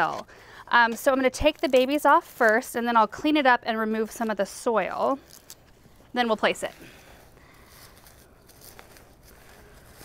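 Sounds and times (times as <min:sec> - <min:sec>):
potting soil rustling and crumbling: 0:00.0 - 0:10.0.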